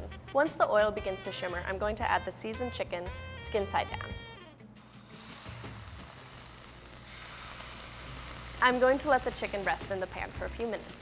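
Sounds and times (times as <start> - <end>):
chicken sizzling in hot oil: 4.8 - 11.0.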